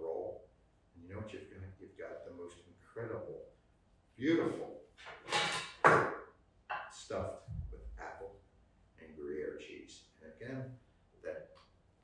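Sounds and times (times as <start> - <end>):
metal pounder handling noises: 5.0 - 7.0
sharp knock on wooden board: 5.8 - 6.9.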